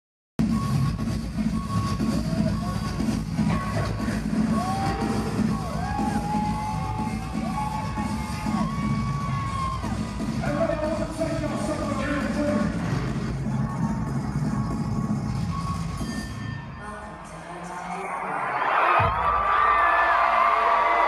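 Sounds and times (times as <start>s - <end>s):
crowd cheering: 2.1s - 15.1s, 17.6s - 21.0s.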